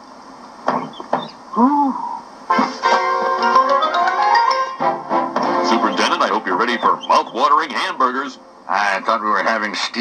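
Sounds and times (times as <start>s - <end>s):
man's voice from tape: 5.6s - 10.0s.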